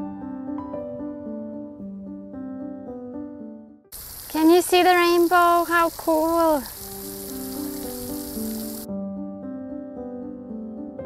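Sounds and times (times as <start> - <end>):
soft piano music: 0.0 - 3.9, 4.5 - 11.0
fountain spray hissing: 3.9 - 8.9.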